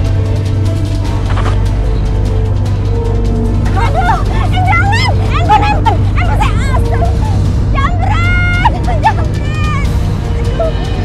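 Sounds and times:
woman crying out: 0:03.8 - 0:07.4.

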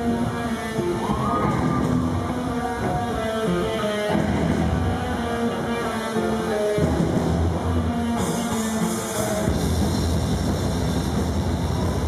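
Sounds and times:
electric guitars heavy riff: 0:00.0 - 0:12.0
rock band playing loudly: 0:00.0 - 0:12.0.

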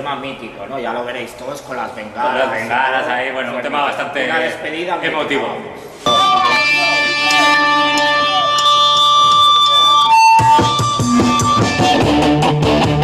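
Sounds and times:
punk band playing: 0:06.0 - 0:13.0
electric guitar chord ringing: 0:06.1 - 0:13.0.

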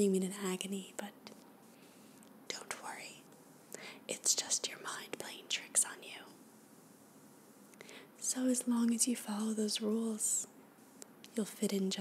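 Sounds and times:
woman whispering: 0:02.5 - 0:03.3, 0:04.1 - 0:06.4, 0:08.2 - 0:10.5.

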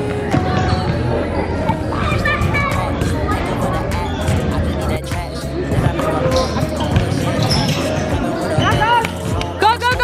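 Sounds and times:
background music with steady bass: 0:00.0 - 0:10.0
players' voices: 0:00.0 - 0:10.0.

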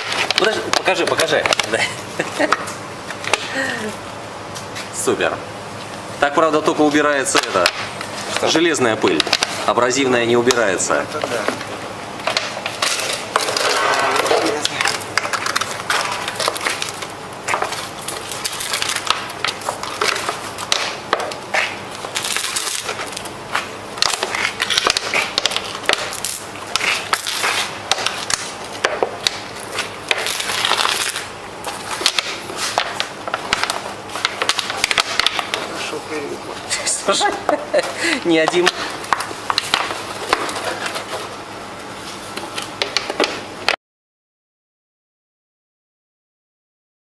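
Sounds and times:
crunching and crackling: 0:00.0 - 0:03.7, 0:06.8 - 0:43.7.

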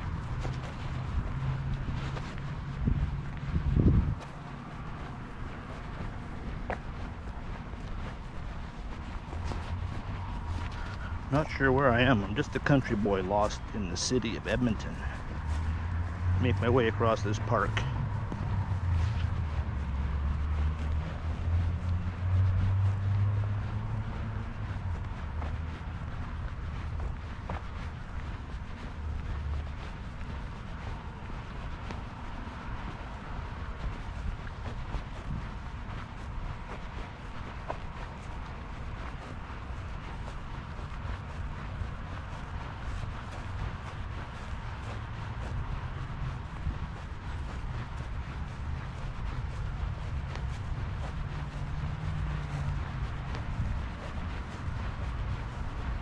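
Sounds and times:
low rumble: 0:00.0 - 0:11.3
footsteps on grass: 0:00.0 - 0:56.0.

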